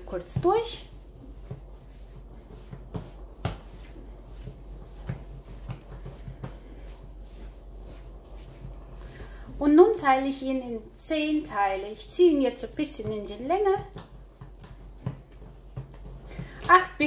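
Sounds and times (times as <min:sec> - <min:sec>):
dough being kneaded by hand: 0:00.0 - 0:17.0.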